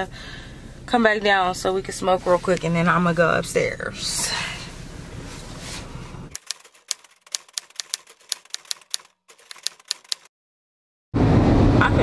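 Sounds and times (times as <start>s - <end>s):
typewriter key clicks: 6.4s - 10.3s.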